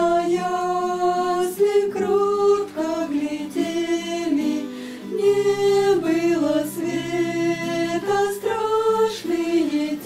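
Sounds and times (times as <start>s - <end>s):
girls singing a hymn: 0.0s - 10.0s.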